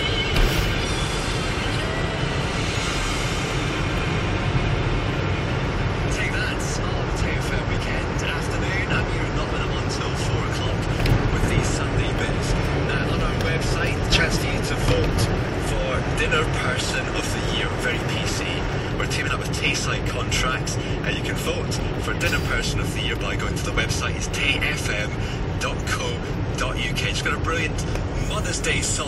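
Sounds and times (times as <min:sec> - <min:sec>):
car road and engine rumble: 0:00.0 - 0:29.0
radio presenter talking: 0:06.1 - 0:29.0
song on car radio: 0:06.4 - 0:29.0.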